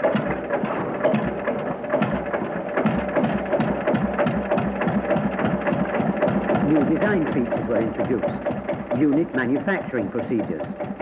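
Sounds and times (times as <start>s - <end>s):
tractor diesel engine clattering: 0.0s - 11.0s.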